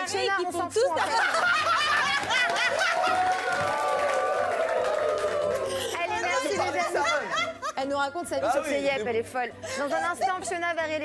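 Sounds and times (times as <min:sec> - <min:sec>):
music: 0:00.0 - 0:11.0.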